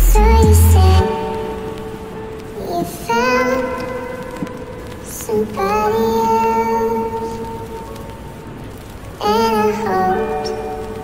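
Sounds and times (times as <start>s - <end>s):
person singing slow sad song: 0.0s - 11.0s.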